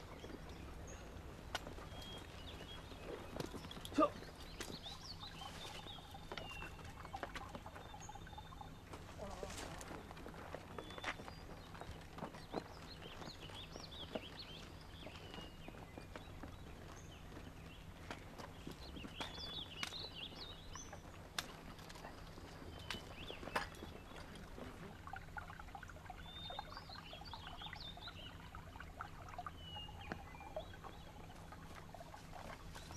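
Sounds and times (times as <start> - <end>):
footsteps on rocky path: 0.0 - 7.9, 8.8 - 24.2
bird chirps: 0.0 - 10.1, 10.7 - 25.0, 26.1 - 32.9.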